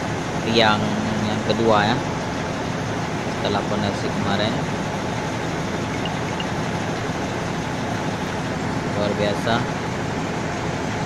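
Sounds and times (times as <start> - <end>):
crane engine running: 0.0 - 11.0.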